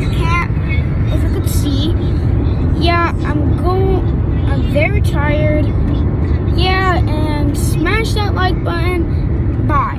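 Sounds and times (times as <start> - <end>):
child talking: 0.0 - 2.0, 2.8 - 9.9
car road rumble: 0.0 - 9.9.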